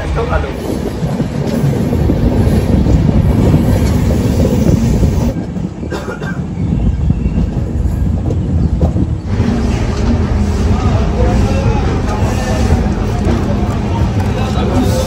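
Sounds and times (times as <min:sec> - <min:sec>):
train wheels clattering on rails: 0:00.0 - 0:15.0.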